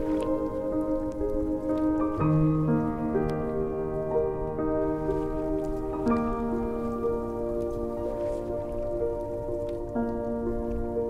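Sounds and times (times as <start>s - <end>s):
lake waves lapping on pebbles: 0.0s - 2.3s
slow calm music of sustained chords: 0.0s - 11.0s.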